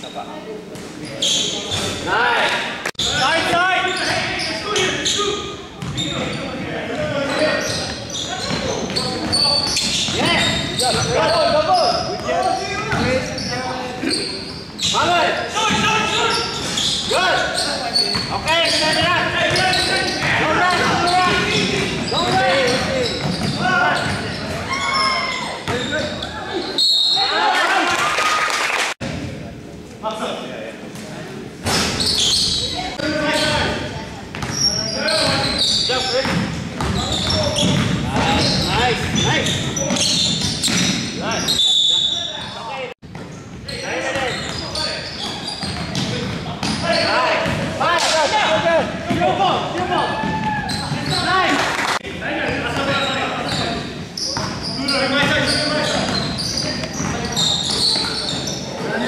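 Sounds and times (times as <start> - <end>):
people shouting and chattering: 0.0 - 59.0.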